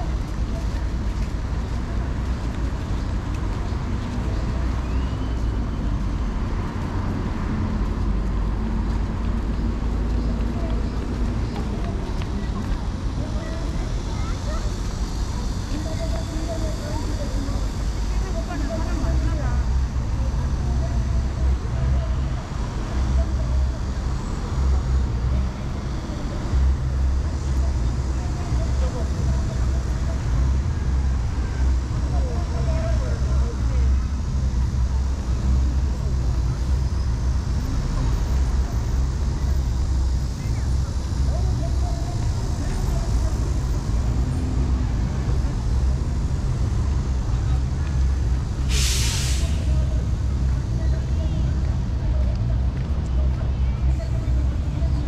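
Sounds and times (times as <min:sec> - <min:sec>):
busy road traffic rumble: 0:00.0 - 0:55.0
passers-by talking: 0:00.0 - 0:55.0
air brakes hissing: 0:48.6 - 0:50.0.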